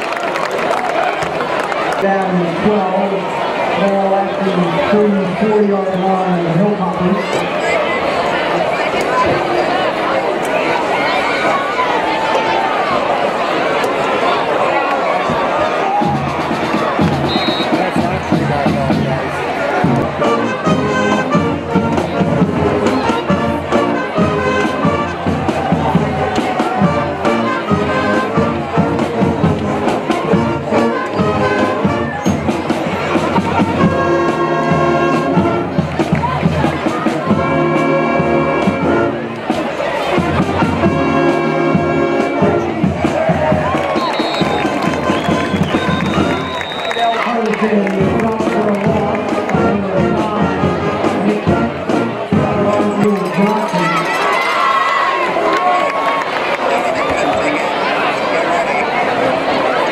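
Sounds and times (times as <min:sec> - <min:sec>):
crowd cheering: 0:00.0 - 0:59.9
brass band playing: 0:15.8 - 0:55.9.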